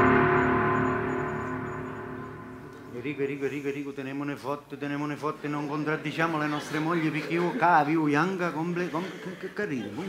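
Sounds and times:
ringing gong-like sting: 0.0s - 3.4s.

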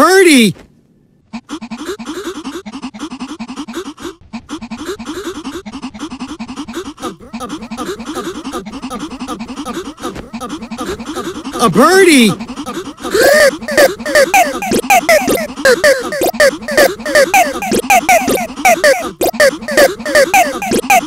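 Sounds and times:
stuttering chopped voice sample: 1.4s - 21.0s.

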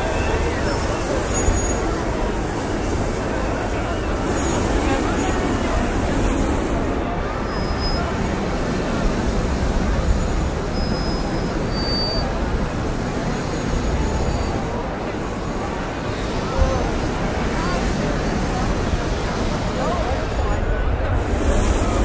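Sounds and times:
crowd chattering: 0.0s - 22.0s.

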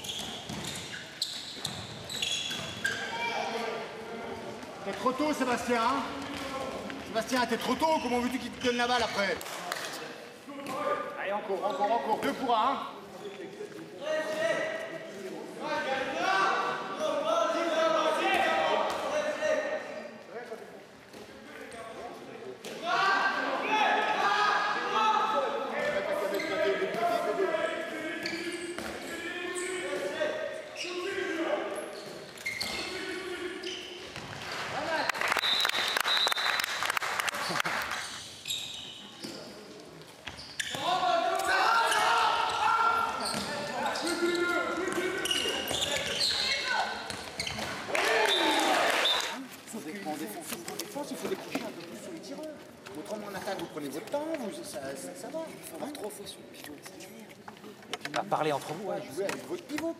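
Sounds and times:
voices shouting in echoing hall: 2.8s - 4.4s, 22.8s - 34.0s, 40.7s - 49.5s.

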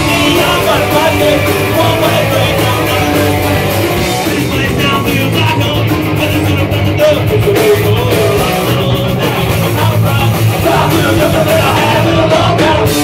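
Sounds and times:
punk rock band playing live: 0.0s - 13.0s.

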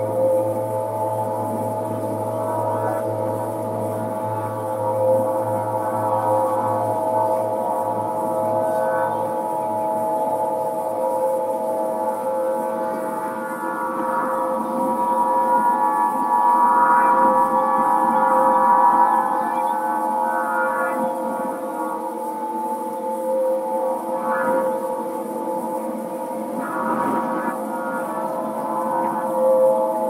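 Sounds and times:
wind harp drone: 0.0s - 30.0s.

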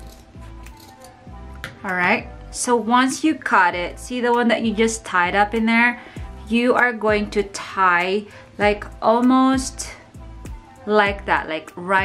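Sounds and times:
scissors snipping twine: 0.0s - 1.2s
background music: 0.0s - 12.0s.

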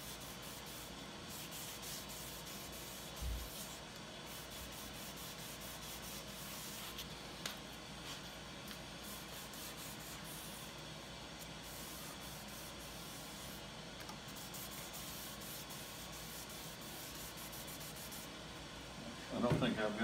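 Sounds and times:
wet sanding rubbing: 0.0s - 7.1s, 9.0s - 10.7s.

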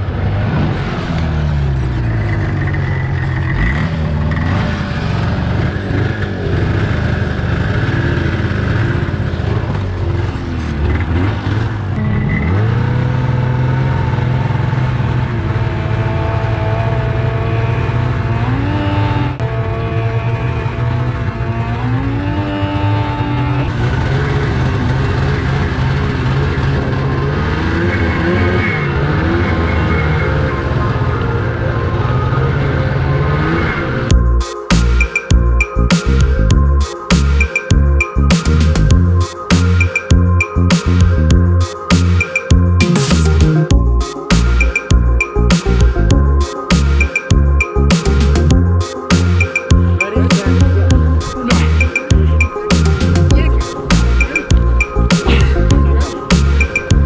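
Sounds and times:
snowmobile engines revving: 0.0s - 57.0s
background music: 26.7s - 57.0s.

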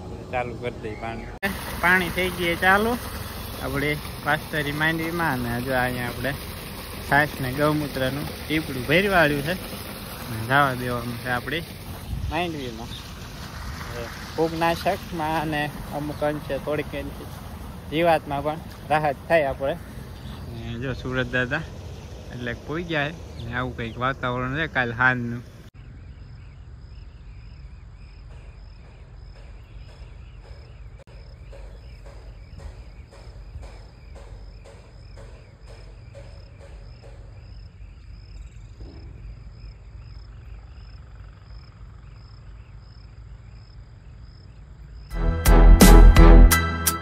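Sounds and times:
man talking: 0.0s - 3.0s, 3.6s - 6.4s, 7.0s - 9.6s, 10.3s - 11.7s, 12.3s - 13.0s, 13.8s - 17.3s, 17.9s - 25.5s
insects chirping: 0.0s - 45.2s
wind on microphone: 11.9s - 12.5s.

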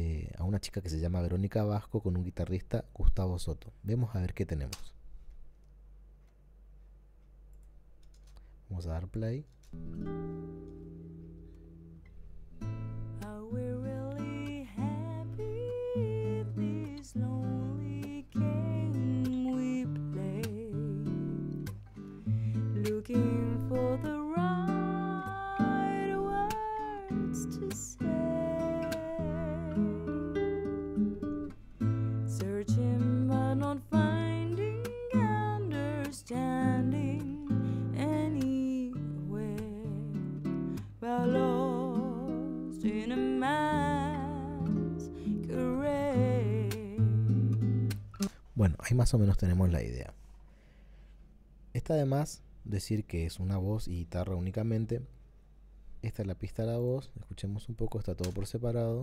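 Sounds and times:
guitar: 9.4s - 49.1s
woman singing with vibrato: 13.2s - 21.5s, 22.8s - 30.4s, 32.4s - 40.3s, 41.0s - 47.2s.

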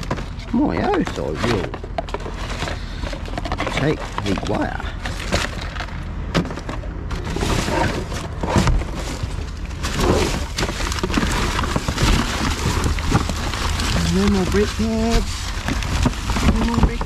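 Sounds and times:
cardboard and plastic bags rustling: 0.0s - 17.0s
thumps and clatters of rubbish: 0.0s - 17.0s.

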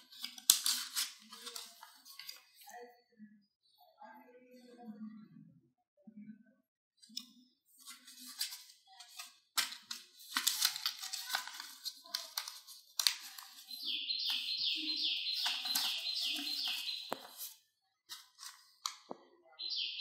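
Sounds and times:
paper card rustling and clicking: 0.0s - 2.7s, 7.8s - 19.2s
bird chirping: 13.6s - 17.5s, 19.5s - 20.0s.

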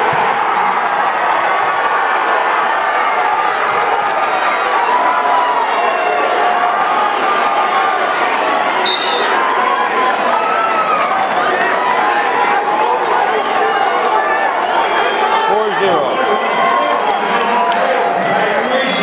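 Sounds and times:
crowd talking and shouting: 0.0s - 19.0s.

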